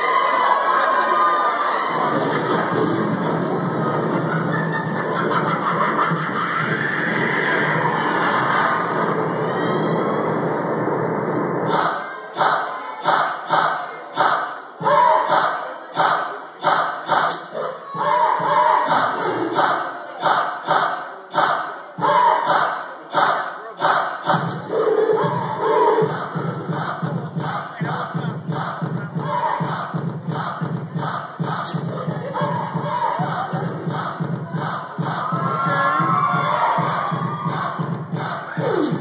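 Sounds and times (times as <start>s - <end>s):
crowd noise: 0.0s - 39.0s
music: 2.0s - 39.0s
unison stomps and claps: 26.1s - 31.9s, 32.5s - 39.0s
shouted chanting: 29.2s - 30.0s, 32.0s - 39.0s.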